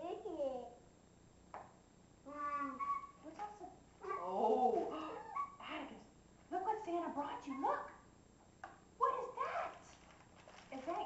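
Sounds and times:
toddler cooing: 2.3 - 3.2, 4.0 - 5.6.

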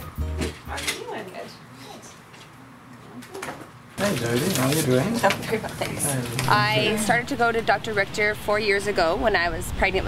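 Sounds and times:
people greeting each other: 0.7 - 8.0.

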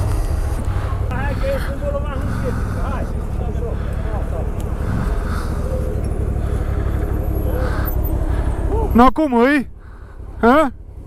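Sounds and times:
quad engine running at low revs: 0.0 - 11.0.

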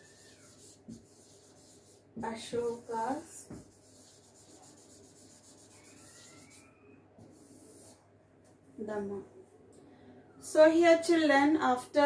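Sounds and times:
marker writing on whiteboard: 0.0 - 8.0
faint thin squeak: 5.6 - 7.0.

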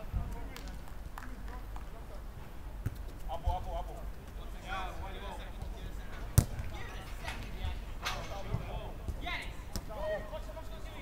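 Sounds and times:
football kicked thud: 6.3 - 6.8.

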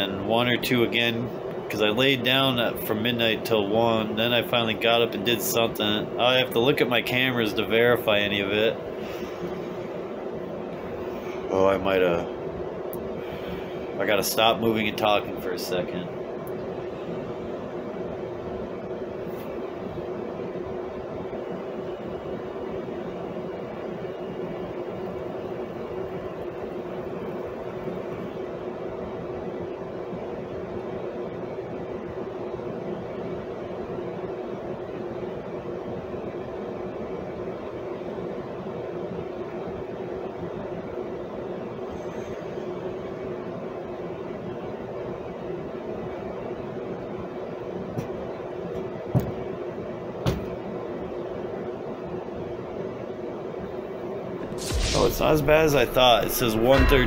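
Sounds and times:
steady mechanical hum: 0.0 - 57.0.

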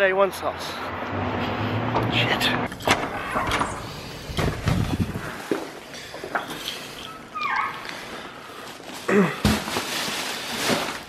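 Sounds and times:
plastic bags rustling: 7.7 - 11.0.

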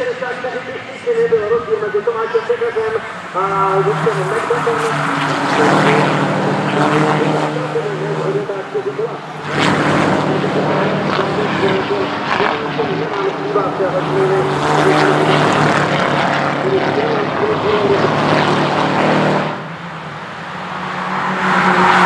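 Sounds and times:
race car engines passing: 0.0 - 22.0.

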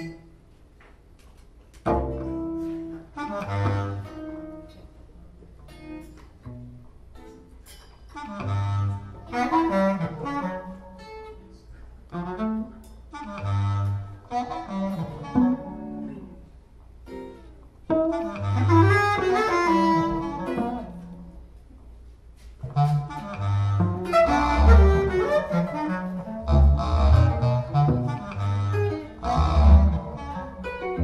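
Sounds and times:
guitar: 0.0 - 31.0
bass clarinet: 1.8 - 6.7, 8.2 - 21.7, 22.4 - 31.0
cello: 1.9 - 5.3, 8.2 - 21.4, 22.6 - 31.0.

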